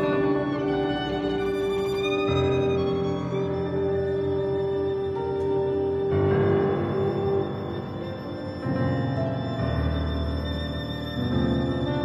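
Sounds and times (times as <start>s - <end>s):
orchestra playing atonal music: 0.0s - 12.0s.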